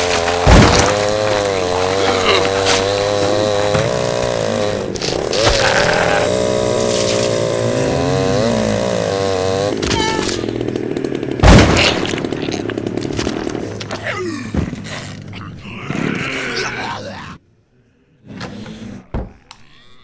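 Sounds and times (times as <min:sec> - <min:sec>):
chainsaw revving: 0:00.0 - 0:14.0.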